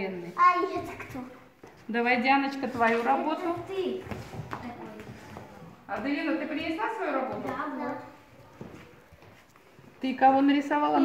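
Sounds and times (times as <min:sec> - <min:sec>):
shuffling: 0:02.6 - 0:10.4.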